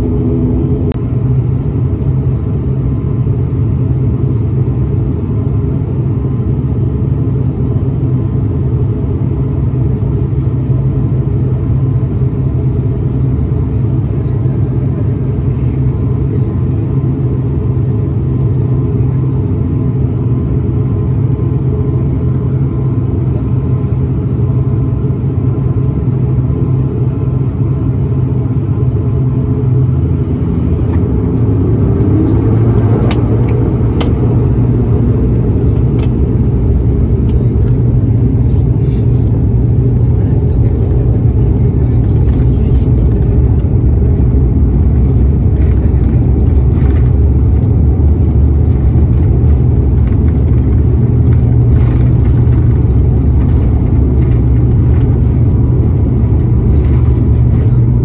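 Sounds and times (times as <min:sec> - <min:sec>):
turboprop engines droning: 0:00.0 - 0:58.0.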